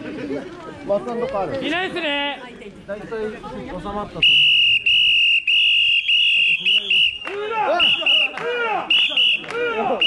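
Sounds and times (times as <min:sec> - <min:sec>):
high-pitched whistle blasts: 0:04.2 - 0:08.3.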